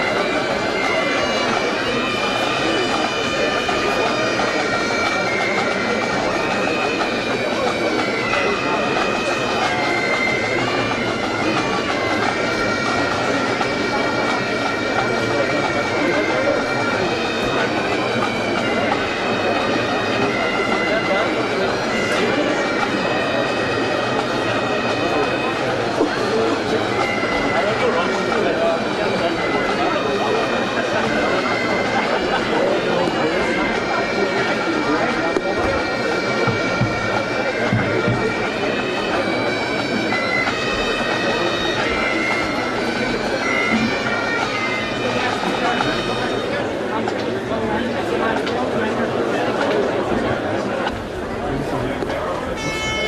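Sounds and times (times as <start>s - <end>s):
bagpipes playing a march: 0.0s - 53.0s.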